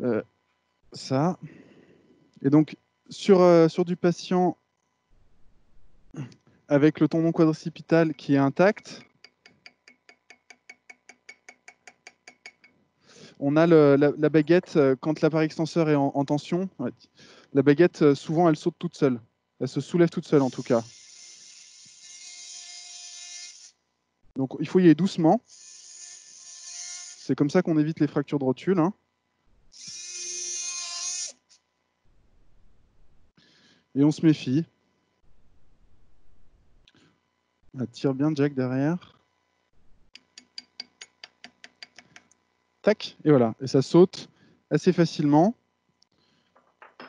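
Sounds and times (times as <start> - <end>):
bone saw whining: 20.2 - 23.8, 25.5 - 27.4, 29.7 - 31.6.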